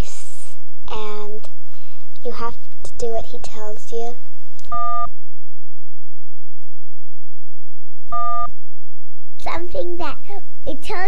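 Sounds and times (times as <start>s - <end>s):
buzzy electronic beep: 4.7s - 5.1s, 8.1s - 8.6s.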